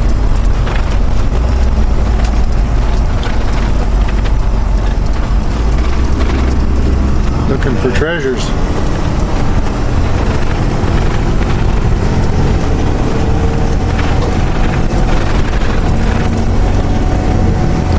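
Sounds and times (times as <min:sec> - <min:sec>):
truck engine running: 0:00.0 - 0:17.9
tyres rumbling on gravel: 0:00.0 - 0:17.9.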